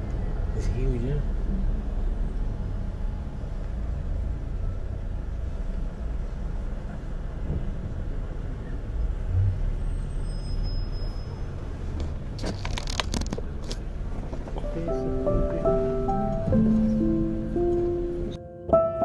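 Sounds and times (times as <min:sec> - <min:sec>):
car engine and tyres rumbling: 0:00.0 - 0:18.4.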